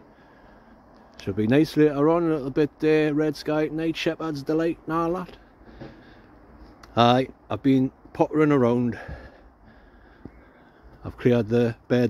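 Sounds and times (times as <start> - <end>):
speech: 1.2 - 5.4, 6.9 - 9.1, 11.0 - 12.0
short breath: 5.6 - 6.6, 8.9 - 11.0.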